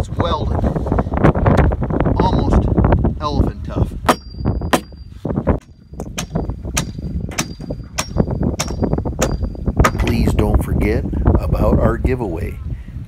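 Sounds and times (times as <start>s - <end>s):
hammer striking nail into wood: 4.1s - 5.0s, 5.6s - 10.2s.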